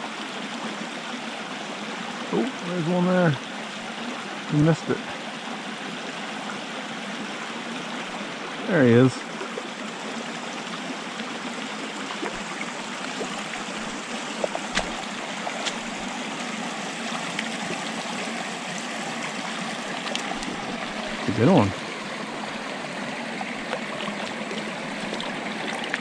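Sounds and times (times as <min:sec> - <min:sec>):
creek babbling over rocks: 0:00.0 - 0:26.0.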